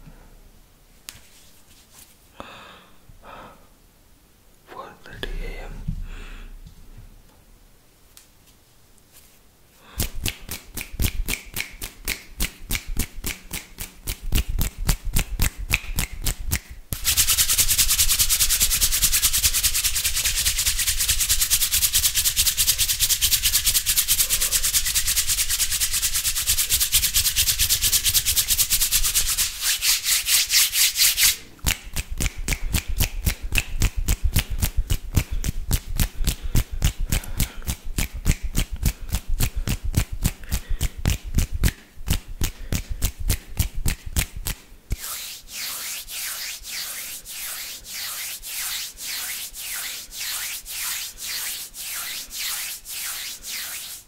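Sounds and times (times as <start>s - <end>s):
palms rubbing together: 1.1s - 2.2s, 10.0s - 54.0s.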